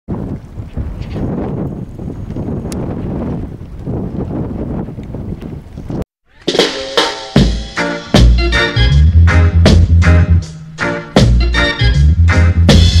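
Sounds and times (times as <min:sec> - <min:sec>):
wind buffeting microphone: 0:00.1 - 0:06.1.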